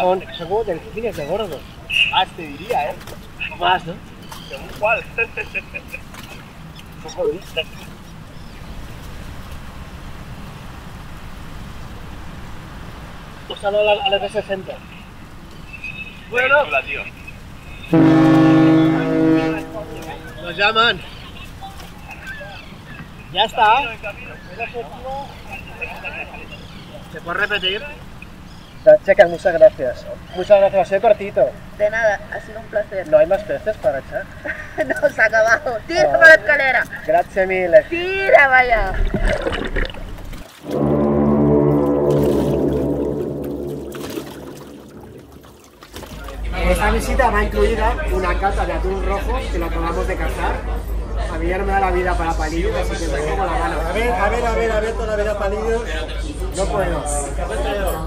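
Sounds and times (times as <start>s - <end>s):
boat horn blast: 17.4s - 21.1s, 40.6s - 49.1s
deep sustained drone: 17.9s - 21.2s, 38.8s - 58.0s.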